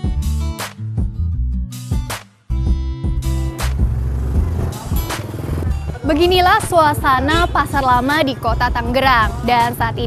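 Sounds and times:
background music: 0.0 - 10.0
street noise: 3.1 - 10.0
motor vehicle passing: 3.4 - 8.4.

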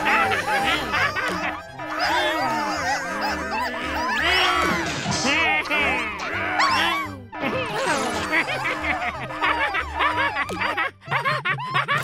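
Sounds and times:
cartoon voices making excited noises: 0.0 - 10.3
background music: 0.0 - 12.0.

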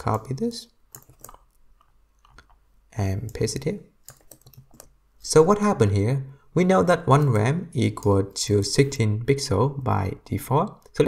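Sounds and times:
keyboard and mouse clicks: 0.9 - 2.6, 3.2 - 5.0.

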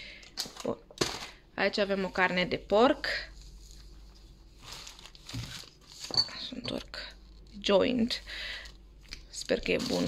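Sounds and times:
plastic wrapping crinkling: 3.1 - 6.2, 7.1 - 10.0.

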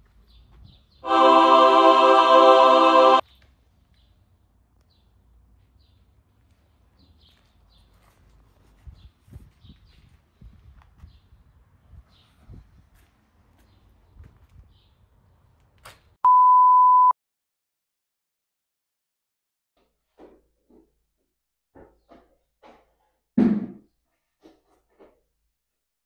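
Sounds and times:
loud electronic beep: 16.3 - 17.1.

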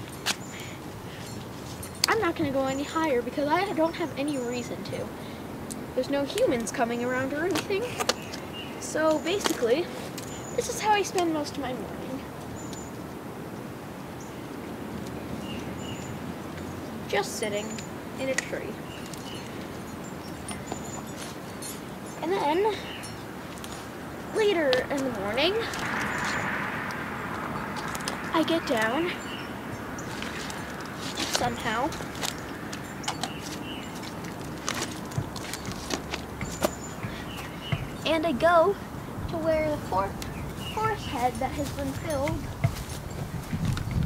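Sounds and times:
child climbing down tree: 0.0 - 44.0
outdoor background hiss: 0.0 - 44.0
steady rush of noise: 0.0 - 44.0
high bird chirps: 18.7 - 24.4, 25.4 - 34.3, 35.5 - 38.2.

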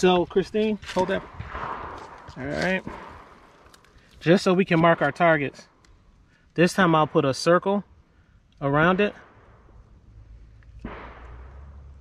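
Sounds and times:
wind rumble on microphone: 0.0 - 3.6
distant gunshot with echo: 1.0 - 3.6, 10.8 - 12.0.

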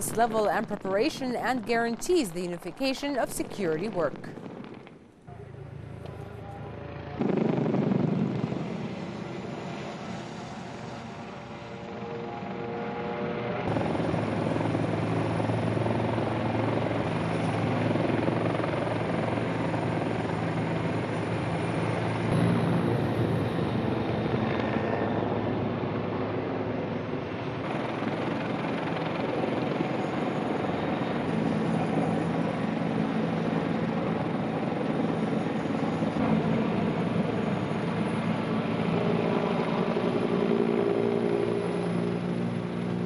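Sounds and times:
helicopter rotor and engine hum: 0.0 - 43.0.

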